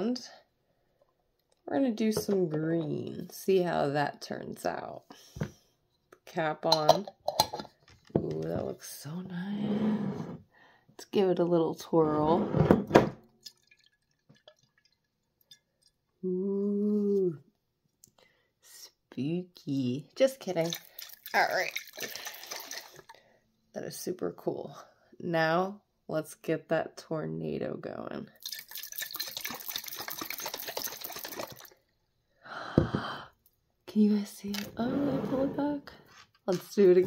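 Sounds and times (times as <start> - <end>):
soft water plops: 13.4 - 15.6
water swirling in glass jar: 13.4 - 15.8, 20.5 - 23.2, 28.4 - 31.8.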